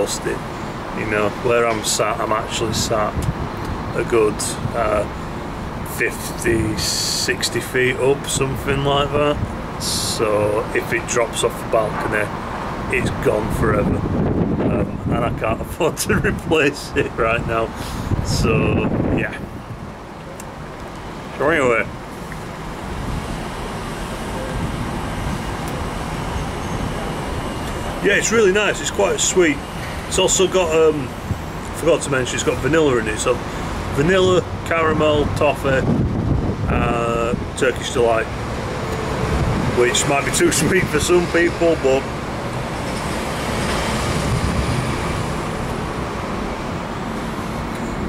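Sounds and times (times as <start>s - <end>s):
distant road traffic: 0.0s - 48.0s
wind on microphone: 13.0s - 16.6s, 17.4s - 20.0s, 35.2s - 37.6s, 39.0s - 41.1s, 42.5s - 45.6s.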